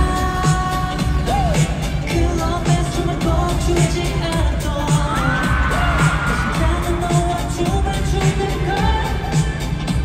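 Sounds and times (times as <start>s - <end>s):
pop concert music with singing: 0.0s - 10.0s.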